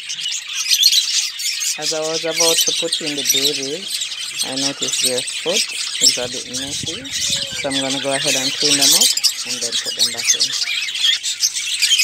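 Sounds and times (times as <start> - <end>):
budgies chirping: 0.0 - 12.0.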